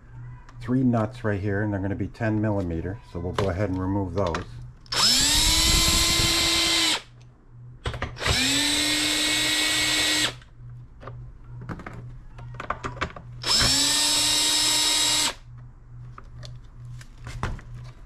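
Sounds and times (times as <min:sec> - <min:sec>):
cordless drill motor whine: 0:04.9 - 0:07.1, 0:08.2 - 0:10.5, 0:13.4 - 0:15.5.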